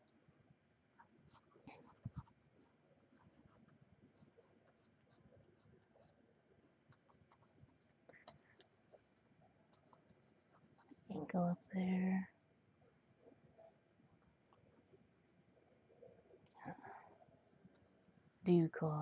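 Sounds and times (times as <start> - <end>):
stylus scratching on tablet: 1.0 - 15.4.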